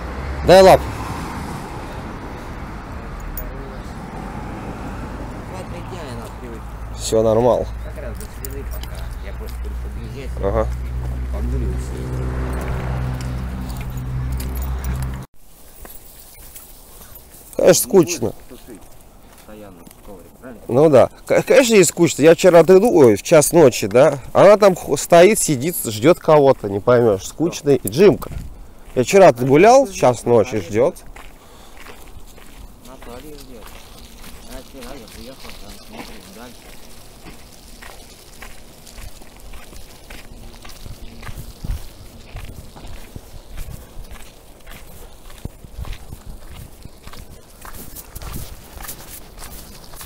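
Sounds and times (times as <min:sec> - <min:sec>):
faint outdoor sound: 0:00.0 - 0:50.0
vehicle engine running: 0:01.8 - 0:15.3
footsteps on dirt track: 0:03.3 - 0:50.0.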